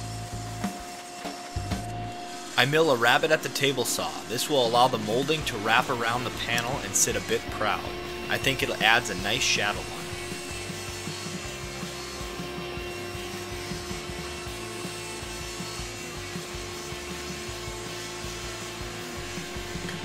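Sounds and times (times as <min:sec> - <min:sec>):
table saw cutting wood: 0:00.0 - 0:20.0.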